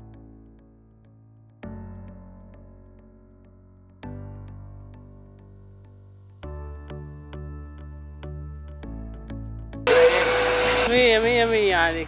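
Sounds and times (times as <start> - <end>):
vacuum cleaner blowing air: 9.9 - 11.7.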